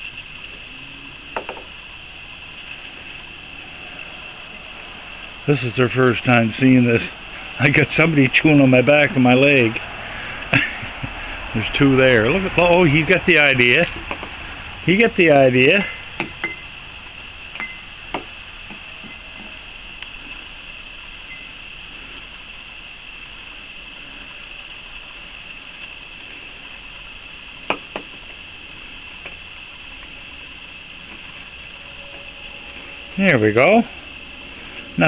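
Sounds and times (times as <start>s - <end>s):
night insects singing: 0.0s - 35.0s.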